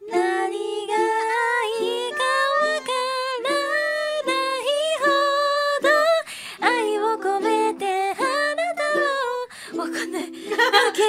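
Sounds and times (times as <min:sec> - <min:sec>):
strummed ukulele: 0:00.0 - 0:11.0
woman singing: 0:00.0 - 0:11.0
quick breath: 0:06.2 - 0:06.6, 0:09.5 - 0:09.8.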